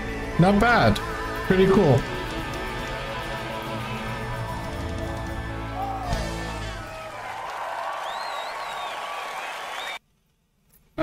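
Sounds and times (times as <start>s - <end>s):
audience applauding: 2.0s - 10.0s.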